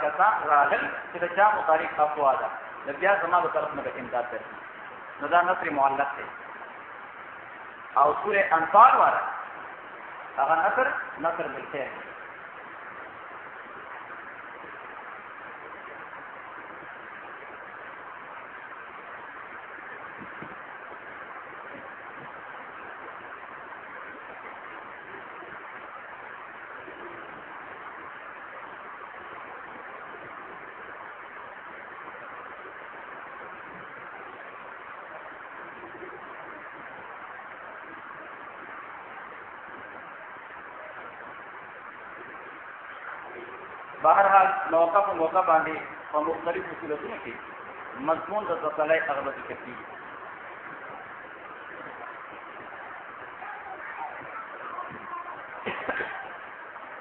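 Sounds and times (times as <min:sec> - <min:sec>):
recording background hiss: 0:00.0 - 0:57.0.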